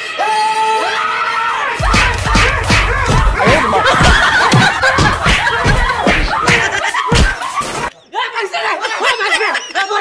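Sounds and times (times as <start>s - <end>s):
choppy laughter: 1.8s - 7.9s.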